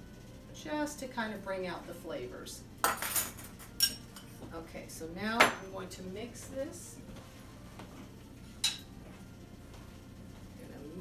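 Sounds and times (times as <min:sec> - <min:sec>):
kitchenware clinking: 0:02.8 - 0:04.4, 0:08.6 - 0:09.0.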